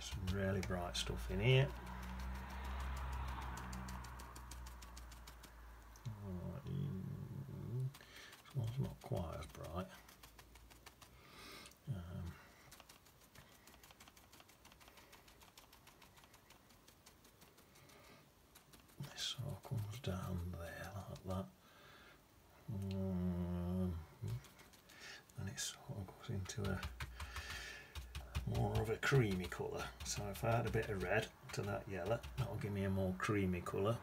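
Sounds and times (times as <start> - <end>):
man making low wordless sounds: 22.7 - 24.4.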